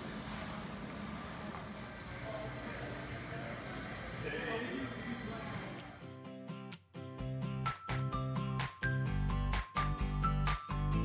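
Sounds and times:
background music: 4.2s - 11.0s.

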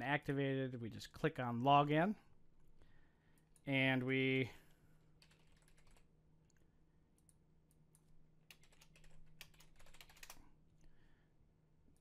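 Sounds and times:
faint keyboard typing: 5.1s - 10.9s.

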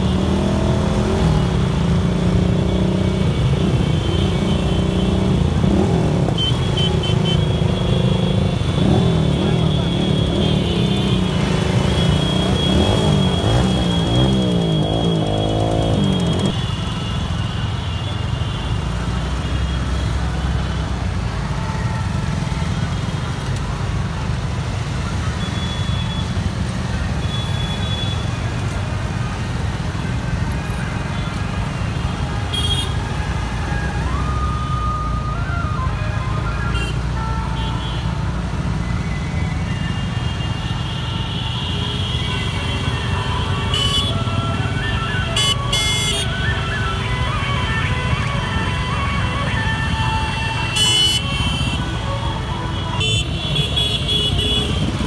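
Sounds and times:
motorcycle engines revving: 0.0s - 17.4s, 42.0s - 55.0s
road rumble: 0.0s - 17.7s, 18.7s - 55.0s.

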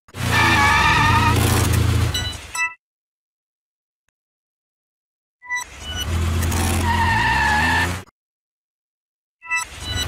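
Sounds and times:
distorted tyre screech: 0.1s - 2.2s, 5.6s - 8.1s.

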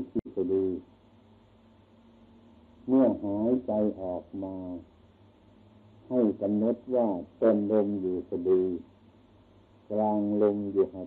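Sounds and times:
man speaking slowly: 0.0s - 0.8s, 2.8s - 4.9s, 6.0s - 8.9s, 9.9s - 11.0s
faint steady hum: 0.0s - 11.0s.

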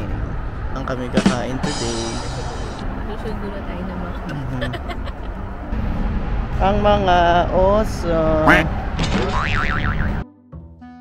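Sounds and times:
cartoon boing: 9.3s - 10.2s.

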